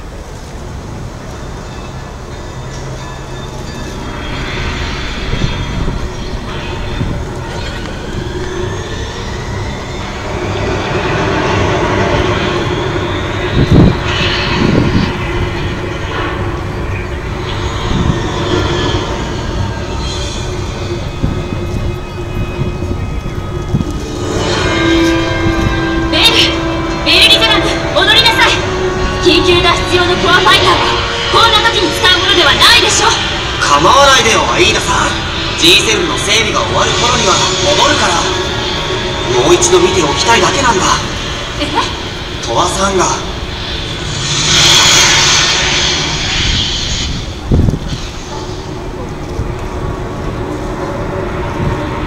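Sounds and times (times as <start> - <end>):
low rumble: 0.0 - 52.0
sustained musical note: 1.3 - 46.4
rising whooshes: 3.9 - 52.0.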